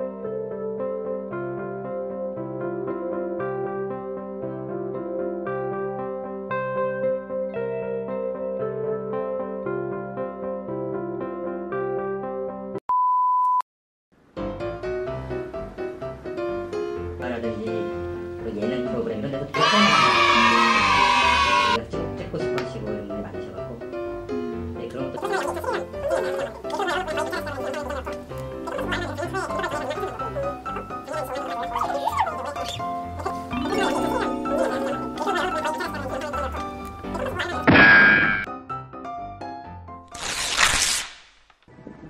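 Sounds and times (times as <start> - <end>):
high censor bleep: 12.9 - 13.6
background music: 14.3 - 40.3
garbled wobbling voice-like sound: 28.8 - 36.6.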